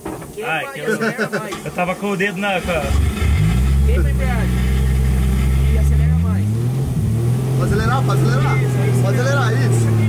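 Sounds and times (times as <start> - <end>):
car engine starting and idling: 1.5 - 10.0.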